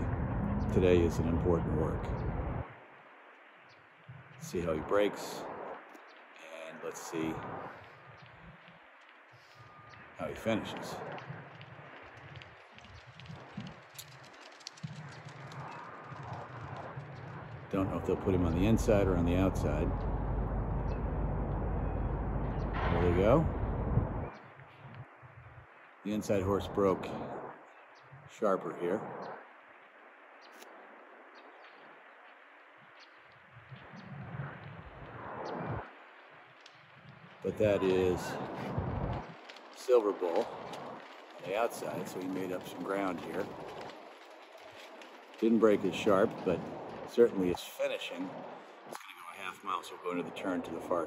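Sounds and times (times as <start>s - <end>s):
low outdoor rumble: 0.0s - 51.0s
soft steady hiss: 0.0s - 51.0s
hoofbeats on dirt: 11.0s - 17.8s, 37.7s - 47.3s
birds chirping faintly: 24.2s - 38.5s.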